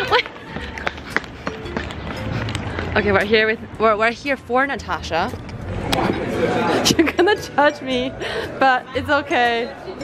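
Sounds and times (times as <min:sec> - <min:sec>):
footsteps: 0:00.0 - 0:07.1
low city rumble: 0:00.0 - 0:07.4
faint music: 0:00.0 - 0:10.0.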